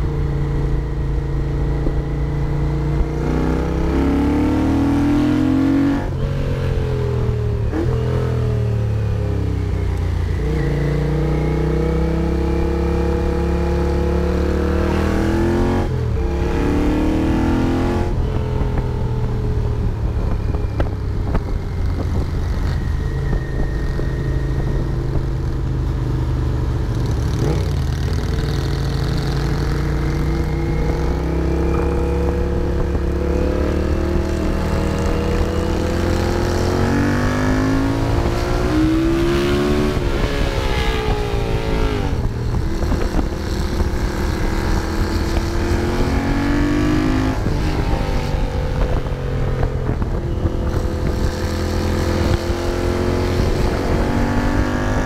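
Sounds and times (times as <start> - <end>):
motorcycle engine accelerating: 0.0 - 55.0.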